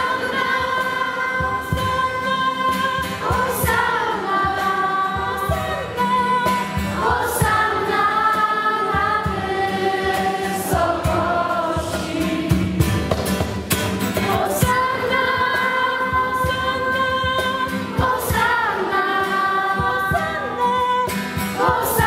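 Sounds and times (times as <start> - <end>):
girls singing a hymn: 0.0 - 13.1, 14.2 - 20.8, 21.4 - 22.0.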